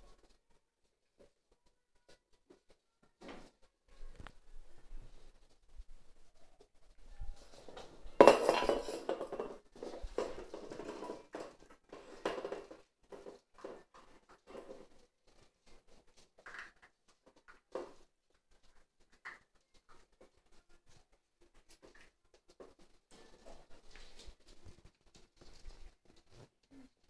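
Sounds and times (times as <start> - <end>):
metal bowl clattering on floor: 7.4 - 15.0.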